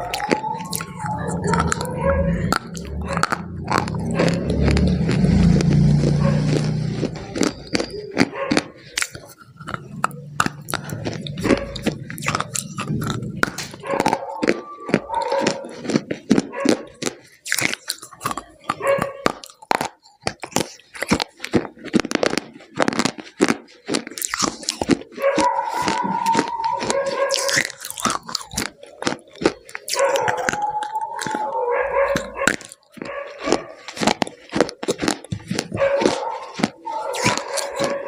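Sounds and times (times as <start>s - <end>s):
low humming mouth sound: 0.0s - 16.2s
crunchy chewing: 0.0s - 38.0s.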